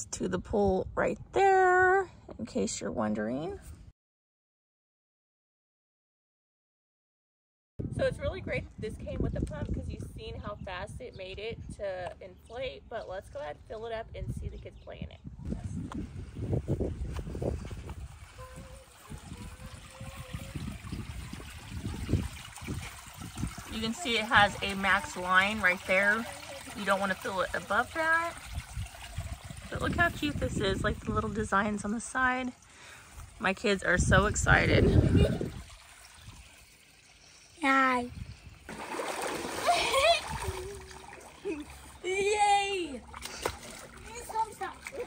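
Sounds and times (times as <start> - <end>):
hose water trickling into pool: 15.4 - 45.0.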